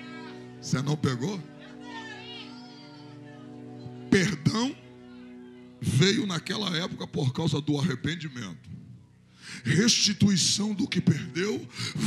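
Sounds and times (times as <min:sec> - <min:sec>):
soft sustained music chord: 0:00.0 - 0:07.9.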